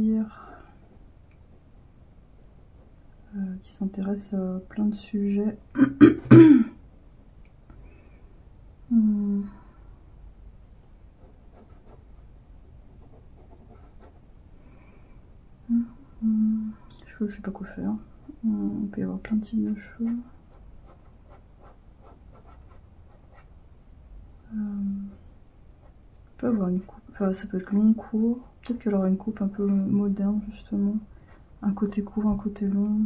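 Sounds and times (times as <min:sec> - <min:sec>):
person coughing: 0:05.8 - 0:06.8
pen sketching on paper: 0:19.6 - 0:23.5.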